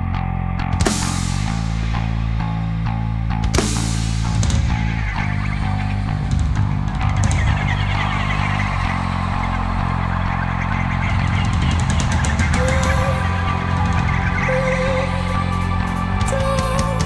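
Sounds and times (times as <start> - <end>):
electric guitars: 0.0 - 17.0
sustained low notes shifting pitch: 0.0 - 17.0
drum kit: 0.6 - 17.0.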